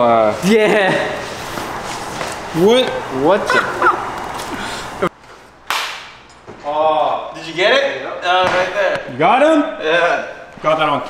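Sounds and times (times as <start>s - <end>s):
man laughing: 3.4s - 5.1s
sharp crack: 5.7s - 6.2s.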